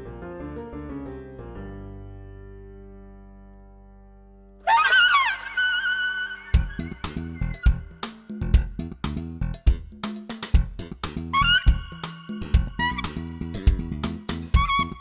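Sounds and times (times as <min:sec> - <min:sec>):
saxophone bending notes: 0:04.7 - 0:08.1, 0:11.3 - 0:13.7, 0:14.5 - 0:15.0
drum beat with bass: 0:06.6 - 0:15.0.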